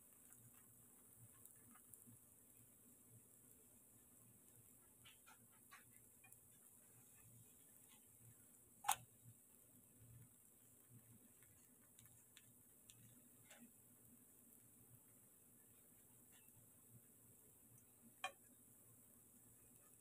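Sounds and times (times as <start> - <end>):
food frying in oil crackling: 0.0 - 20.0.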